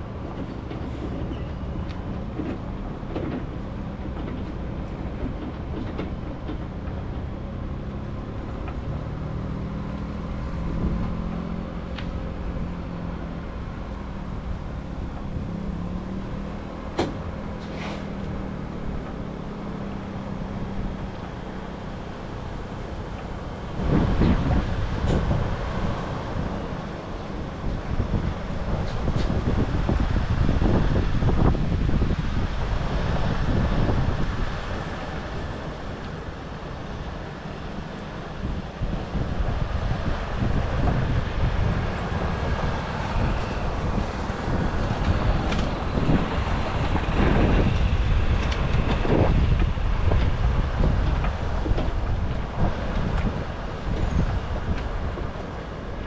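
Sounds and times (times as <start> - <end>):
truck engine and road rumble: 0.0 - 56.0
wind buffeting microphone: 18.3 - 56.0.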